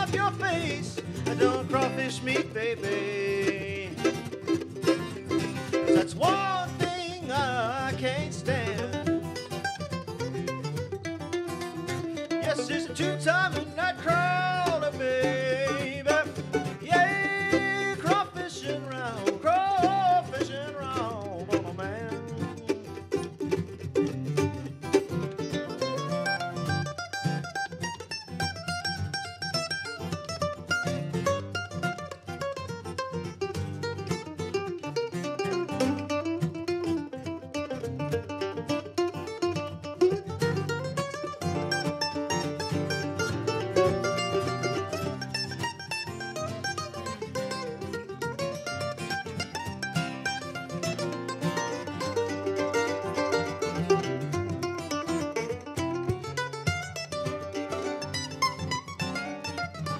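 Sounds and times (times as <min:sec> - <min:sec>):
mandolin picking quick runs: 0:00.0 - 0:59.9
strummed acoustic guitar: 0:00.0 - 0:59.9.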